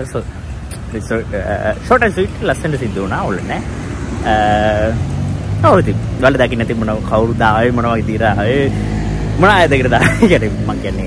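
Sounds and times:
man talking: 0.0s - 11.0s
road traffic hum: 0.0s - 11.0s.

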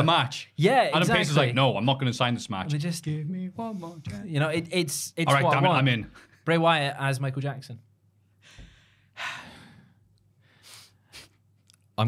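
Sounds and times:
short breath: 8.4s - 11.4s.

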